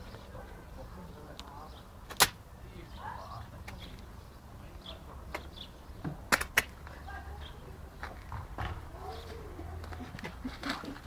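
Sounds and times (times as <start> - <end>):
sharp crack of plastic: 2.1 - 2.4, 6.3 - 6.8.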